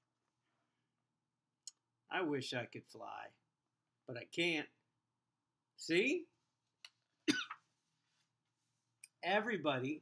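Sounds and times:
person coughing: 0:07.3 - 0:07.6.

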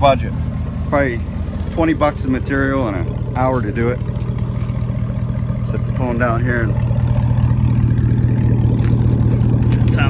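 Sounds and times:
loud unmuffled engine exhaust idling: 0:00.0 - 0:10.0.

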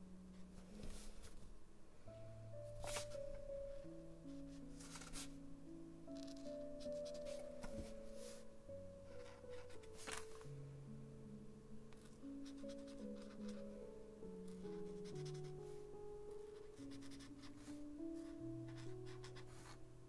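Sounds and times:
dreamy background music: 0:00.0 - 0:20.0.

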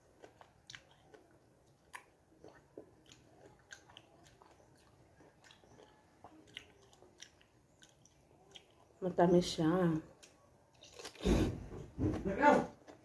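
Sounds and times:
soft chewing mouth clicks: 0:00.1 - 0:09.0.

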